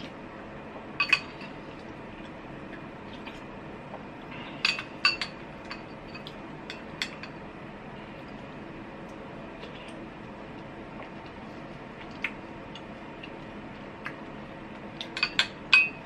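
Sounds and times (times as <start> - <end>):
spoon clinking against glass bowl: 15.2 - 16.0.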